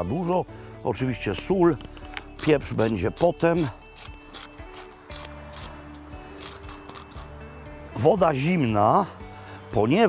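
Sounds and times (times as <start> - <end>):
background music with held notes: 0.0 - 10.0
salt mill grinding: 1.9 - 7.4.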